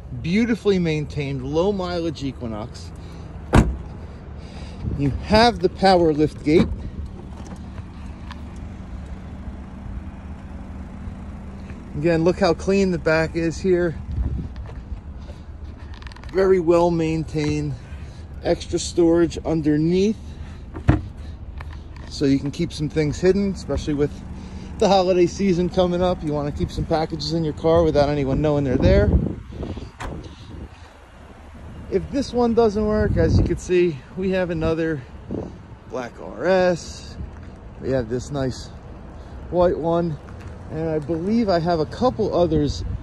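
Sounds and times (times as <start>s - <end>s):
wind rumble on microphone: 13.9s - 14.9s, 27.6s - 30.8s, 32.8s - 33.7s, 34.6s - 35.7s, 42.4s - 43.0s.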